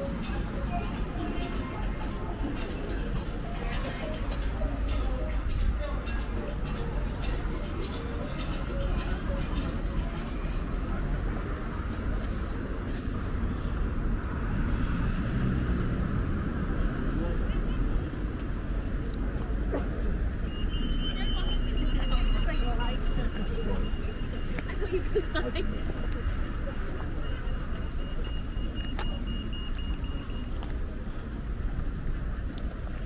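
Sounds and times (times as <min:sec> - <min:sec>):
pedestrian crossing signal beeping: 0:00.0 - 0:19.3, 0:20.2 - 0:33.0
road traffic rumble: 0:00.0 - 0:33.0.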